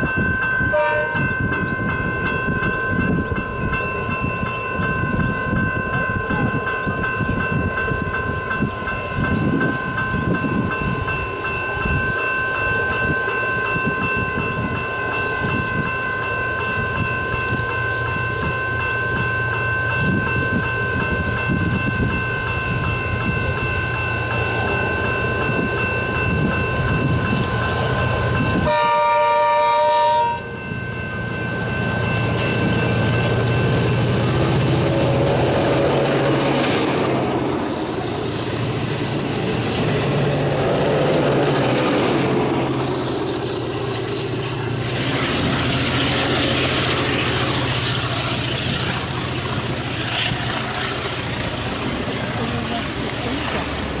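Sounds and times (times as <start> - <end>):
diesel locomotive engine: 0.0 - 54.0
train horn chord: 0.6 - 1.4, 28.6 - 30.6
short horn blasts: 0.7 - 1.3, 28.6 - 30.5.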